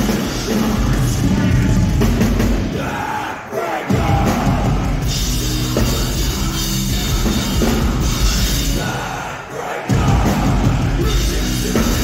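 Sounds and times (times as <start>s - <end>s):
crowd noise: 0.0s - 12.0s
metalcore band playing live: 0.0s - 12.0s.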